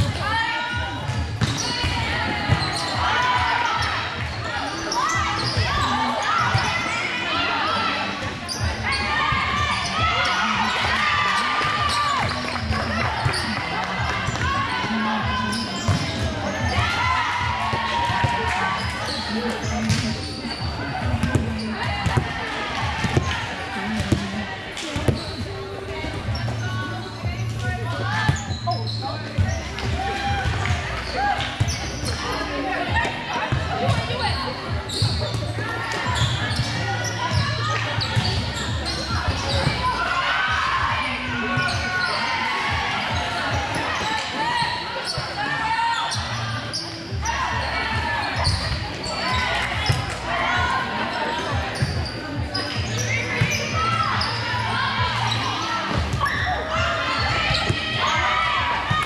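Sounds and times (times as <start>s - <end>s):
voices calling out and chattering: 0.0s - 59.0s
volleyball hits and bounces: 1.0s - 2.8s, 19.6s - 20.2s, 21.1s - 25.2s.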